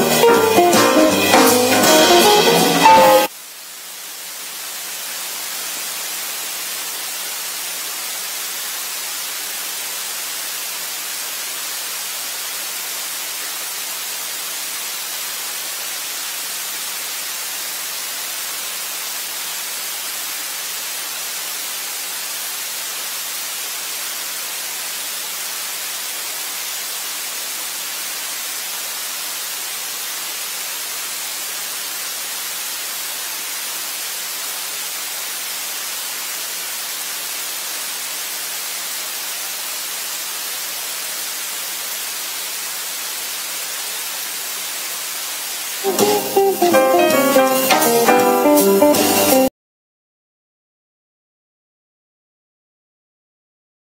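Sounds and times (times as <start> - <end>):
static hiss: 0.0 - 49.5.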